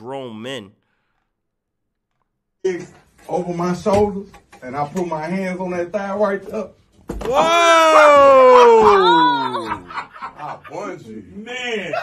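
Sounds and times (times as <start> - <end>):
person speaking: 0.0 - 0.8.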